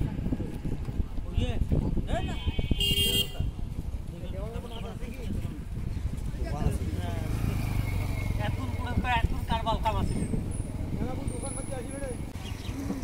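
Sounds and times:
people talking: 0:08.4 - 0:10.4.

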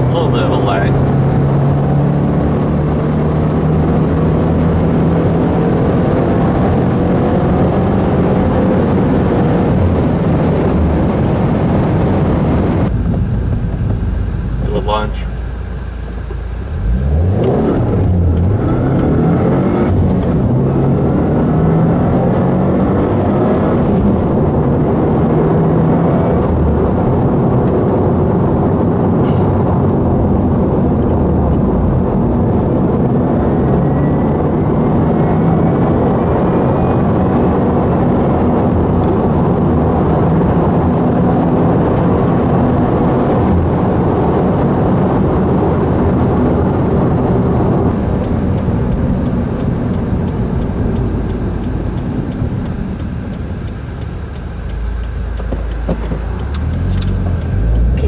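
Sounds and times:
car engine revving under throttle: 0:00.0 - 0:58.0.

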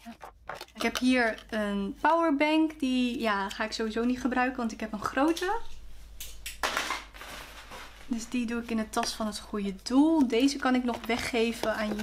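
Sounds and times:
plastic items handled in drawer: 0:00.0 - 0:01.7, 0:07.1 - 0:12.0.

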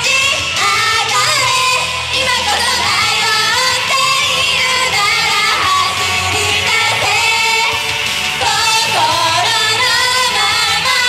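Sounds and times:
pop backing track: 0:00.0 - 0:11.0
women singing into microphones: 0:00.0 - 0:11.0.

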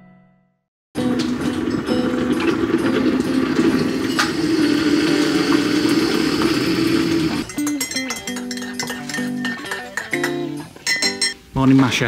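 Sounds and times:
hot water dispenser hissing: 0:01.0 - 0:07.5
guitar music: 0:01.0 - 0:11.5.

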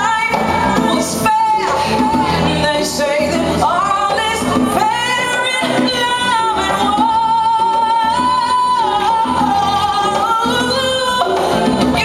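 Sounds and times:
band playing: 0:00.0 - 0:12.0
conga drums: 0:00.0 - 0:12.0.

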